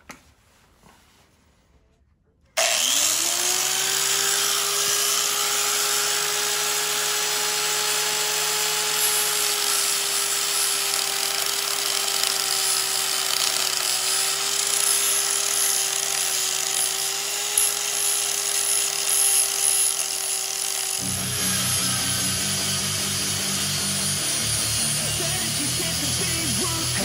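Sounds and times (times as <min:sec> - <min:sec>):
angle grinder whining: 0:02.6 - 0:27.0.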